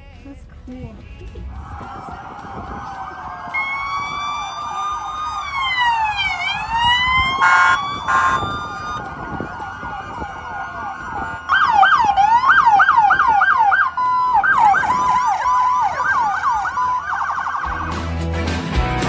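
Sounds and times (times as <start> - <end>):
police sirens wailing: 1.4 - 18.4
fast yelping siren: 1.6 - 18.0
short siren blasts: 1.6 - 18.0.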